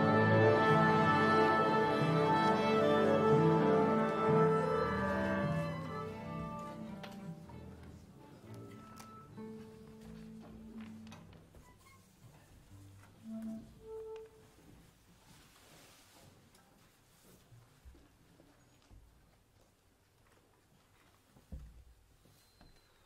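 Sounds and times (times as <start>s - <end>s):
orchestra tuning: 0.0s - 11.3s, 12.7s - 14.6s
single held instrument notes: 13.1s - 14.7s.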